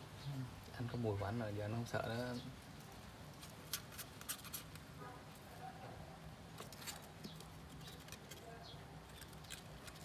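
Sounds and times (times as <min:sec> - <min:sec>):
animal claws on cardboard: 0:03.3 - 0:04.9, 0:06.5 - 0:10.0.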